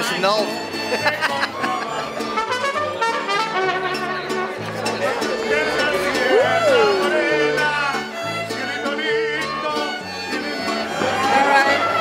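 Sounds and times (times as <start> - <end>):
violins playing a melody: 0.0 - 12.0
bass line: 3.4 - 9.8.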